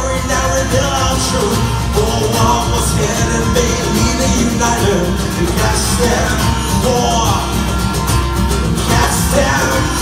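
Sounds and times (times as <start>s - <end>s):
strummed acoustic guitars: 0.0s - 10.0s.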